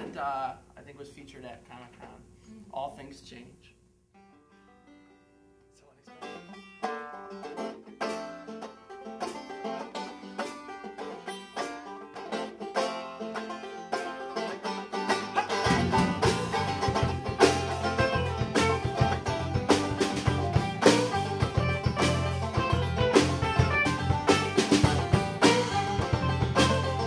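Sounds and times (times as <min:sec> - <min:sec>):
banjo picking: 0:04.2 - 0:27.0
electric guitar: 0:04.5 - 0:27.0
low bass: 0:15.6 - 0:27.0.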